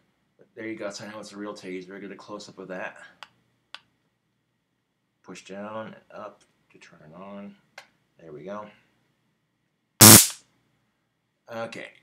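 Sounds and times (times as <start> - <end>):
stun gun electric arc crackling: 10.0 - 10.4.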